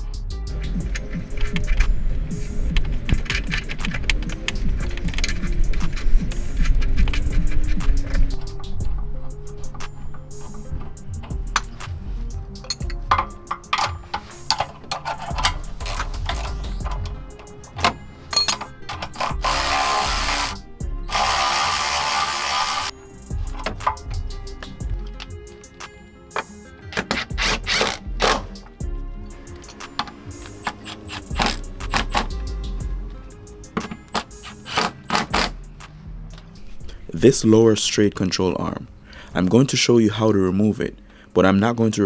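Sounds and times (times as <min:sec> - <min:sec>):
background music: 0:00.0 - 0:42.0
tool clicking: 0:12.6 - 0:22.9, 0:26.4 - 0:28.6, 0:29.5 - 0:32.4
electric ratchet running: 0:19.1 - 0:22.9, 0:27.4 - 0:28.5.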